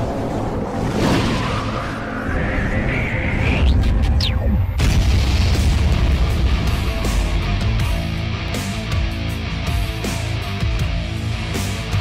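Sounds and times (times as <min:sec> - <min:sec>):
heavy bass-laden music: 0:03.7 - 0:12.0
deep boom hit: 0:04.8 - 0:08.5.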